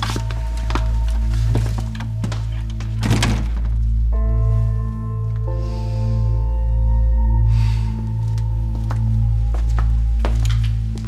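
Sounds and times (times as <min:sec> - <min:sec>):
low sustained chords music: 0:00.0 - 0:11.0.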